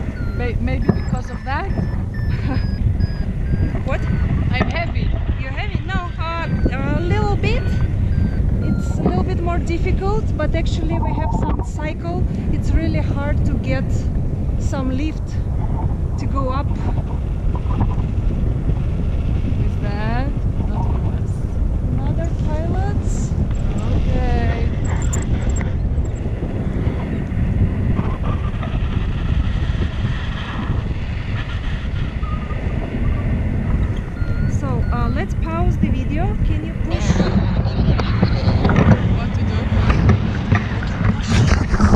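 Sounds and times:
voices: 0.0s - 15.5s, 16.2s - 17.0s, 19.4s - 26.3s, 33.8s - 41.9s
wind buffeting microphone: 0.0s - 41.9s.

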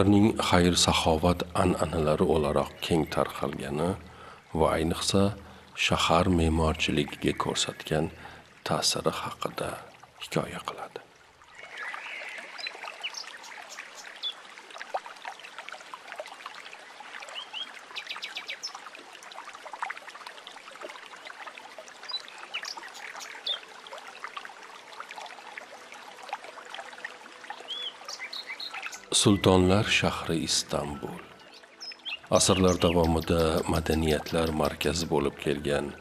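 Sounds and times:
birds chirping: 0.0s - 14.4s, 17.3s - 18.8s, 22.0s - 23.7s, 27.5s - 36.0s.

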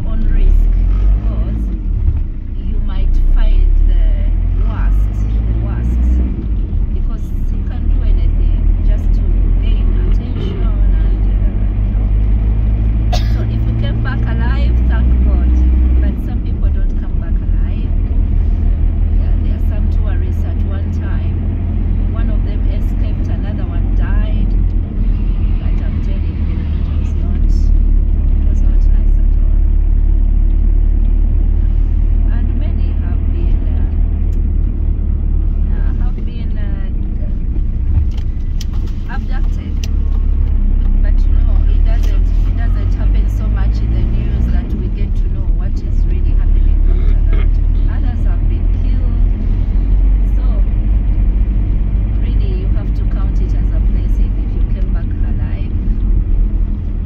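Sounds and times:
car engine rumble: 0.0s - 57.0s
tyres on wet road: 0.0s - 57.0s.

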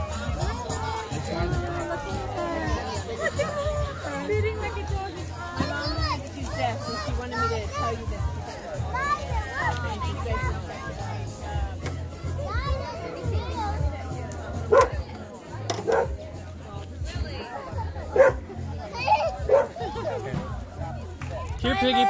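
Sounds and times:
children's chatter: 0.0s - 22.0s.

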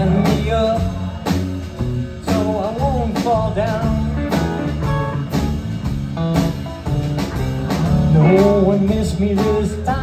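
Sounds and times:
bass guitar: 0.0s - 10.0s
drum kit steady beat: 0.0s - 10.0s.

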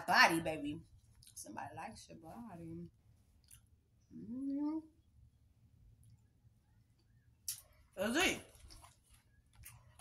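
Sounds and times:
woman humming rising mm: 4.1s - 5.0s.

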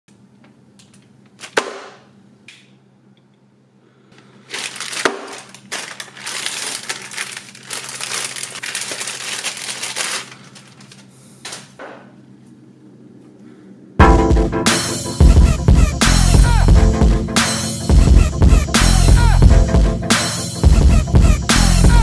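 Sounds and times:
plastic crinkling rustle: 4.2s - 11.2s
plastic mailer bag tearing: 4.4s - 11.1s.

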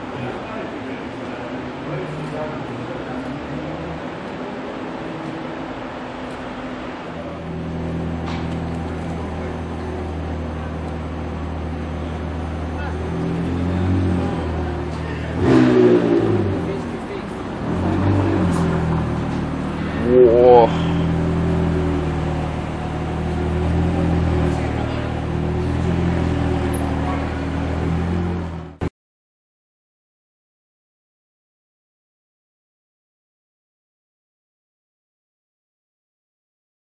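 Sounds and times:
car engine at low revs: 0.0s - 28.9s.

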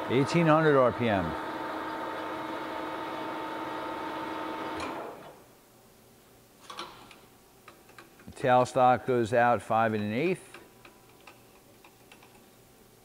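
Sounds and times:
lathe running with steady whine: 0.0s - 5.3s.

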